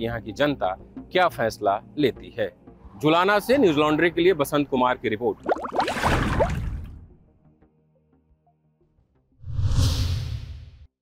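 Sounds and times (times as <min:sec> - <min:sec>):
rushing whoosh: 0:09.4 - 0:10.7.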